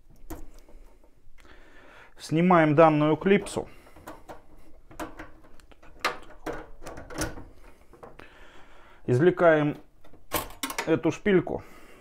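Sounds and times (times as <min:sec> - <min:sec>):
small metal clicks and knocks: 0:03.5 - 0:08.2, 0:09.8 - 0:11.0.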